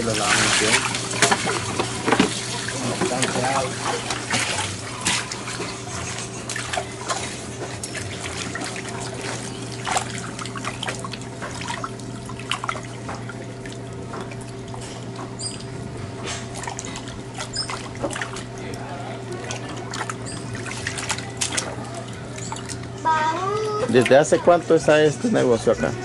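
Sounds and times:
steady low hum: 0.0s - 26.0s
water sloshing in a plastic basin: 0.0s - 26.0s.

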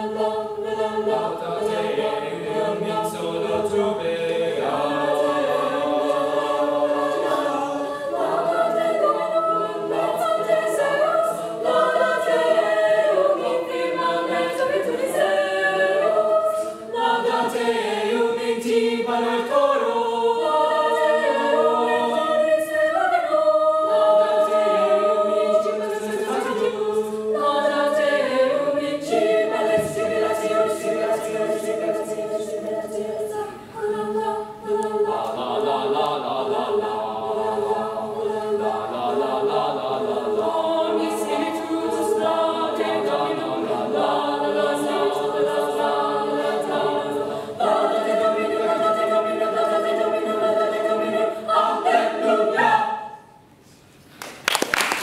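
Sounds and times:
mixed choir singing in harmony: 0.0s - 53.6s.

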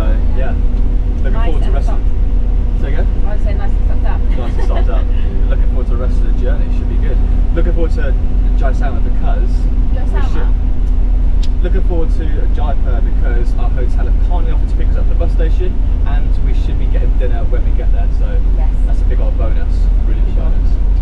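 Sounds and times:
person talking: 0.0s - 0.6s, 1.2s - 2.1s, 2.8s - 10.6s, 11.4s - 20.6s
bus engine rumble: 0.0s - 21.0s.

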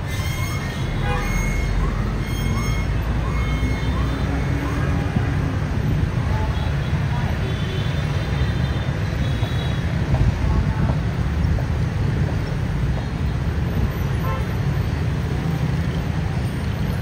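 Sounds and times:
motorbike and car traffic rumble: 0.0s - 17.0s.

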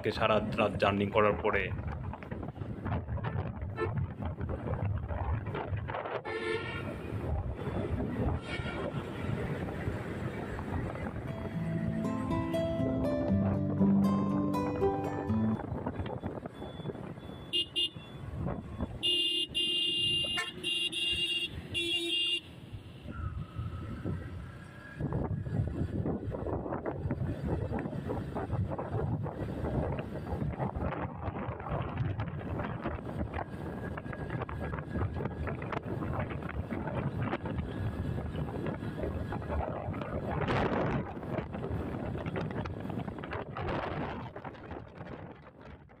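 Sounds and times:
road and wind noise: 0.0s - 46.0s
vehicle horn blasts: 6.2s - 6.9s, 8.4s - 9.4s, 17.5s - 18.2s, 19.0s - 22.5s.

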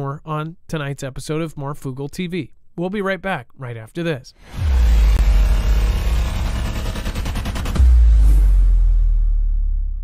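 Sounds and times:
deep bass rumble sound effect: 4.4s - 10.0s.

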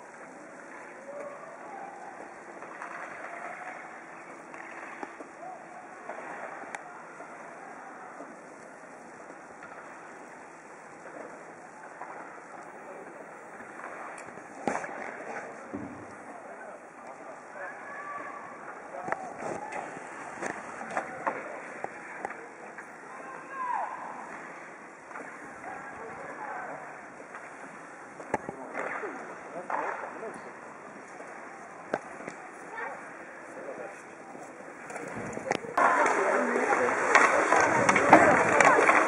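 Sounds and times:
skates on ice: 0.2s - 5.3s, 11.0s - 15.7s, 27.2s - 39.0s
hockey stick clicks: 2.6s - 3.9s, 4.5s - 5.3s, 34.8s - 39.0s
distant shouts: 23.1s - 24.3s.

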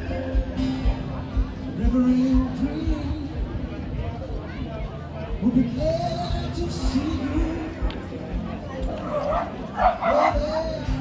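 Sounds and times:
dog barking: 9.0s - 10.9s.

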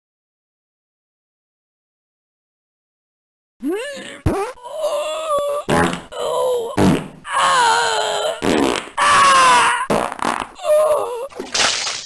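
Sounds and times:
loud fart noises: 4.0s - 4.7s, 5.7s - 7.3s, 8.2s - 10.7s.

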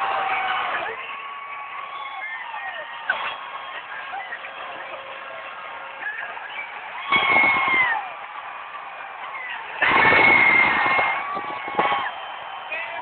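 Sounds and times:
fans yelling loudly: 0.0s - 13.0s
stadium crowd cheering: 0.0s - 13.0s.

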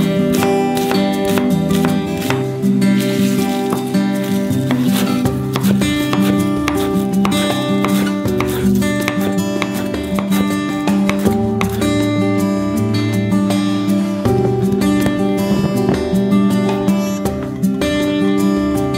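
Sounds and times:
acoustic guitar music: 0.0s - 18.9s.

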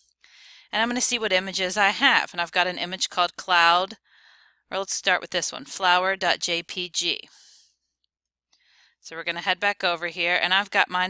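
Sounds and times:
faint breath: 0.2s - 0.7s, 4.0s - 4.7s, 8.6s - 9.0s.

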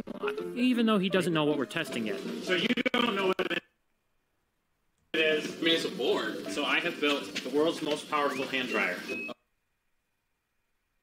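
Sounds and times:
man speaking: 0.6s - 3.7s, 5.2s - 9.2s.

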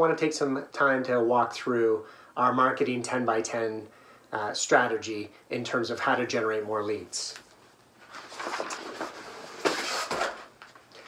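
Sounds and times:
paper sheet flapping: 8.0s - 10.8s
paper sheet rustling: 8.0s - 11.0s.

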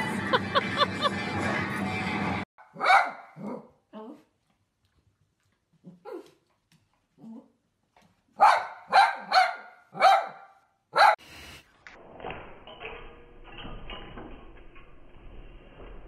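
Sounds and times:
small dog barking: 2.7s - 3.7s, 8.4s - 11.2s.

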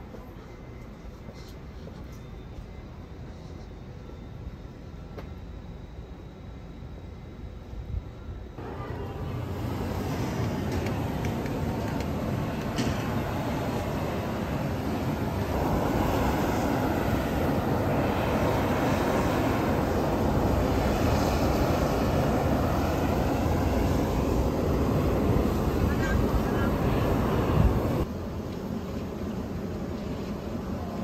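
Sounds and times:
steam rushing from hot spring: 8.6s - 28.0s.

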